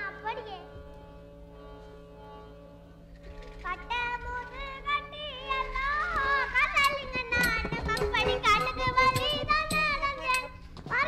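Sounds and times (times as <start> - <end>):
child speaking into a microphone: 0.0 - 0.8.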